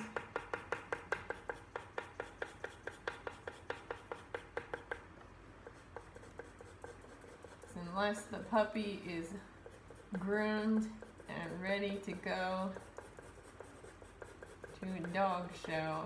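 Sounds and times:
pencil sketching on paper: 0.1s - 5.0s, 5.6s - 16.0s.

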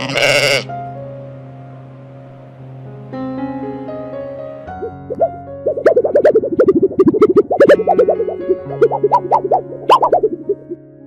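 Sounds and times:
lamb bleating: 0.0s - 0.7s
soft piano music: 0.7s - 11.0s.

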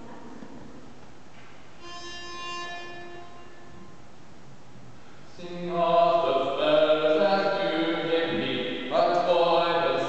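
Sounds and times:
pitch pipe note: 1.8s - 4.1s.

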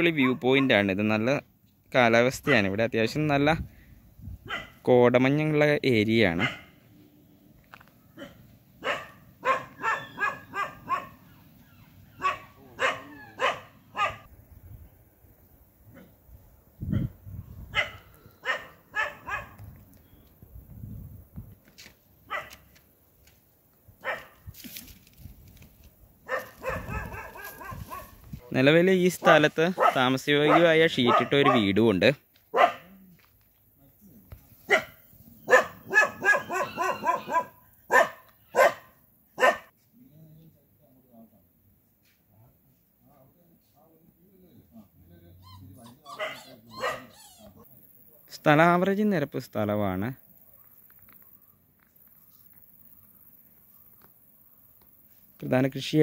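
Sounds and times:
dog barking: 0.2s - 0.8s, 4.4s - 4.8s, 6.3s - 6.8s, 8.1s - 11.3s, 12.2s - 14.3s, 17.7s - 19.6s, 22.3s - 22.6s, 24.0s - 24.4s, 26.2s - 28.2s, 29.2s - 31.8s, 32.5s - 33.0s, 34.7s - 39.7s, 45.9s - 47.2s.

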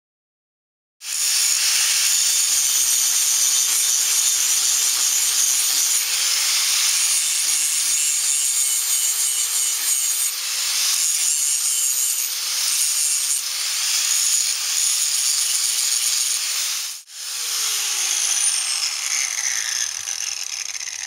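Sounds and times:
angle grinder grinding steel: 1.0s - 21.0s.

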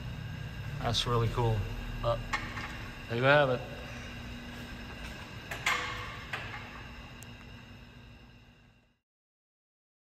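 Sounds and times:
low hum: 0.0s - 9.0s.

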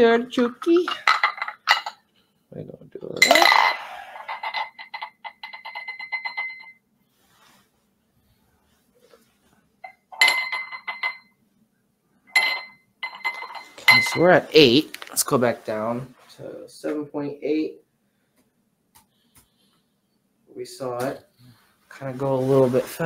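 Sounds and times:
magnet clinking against glass: 12.3s - 14.2s.

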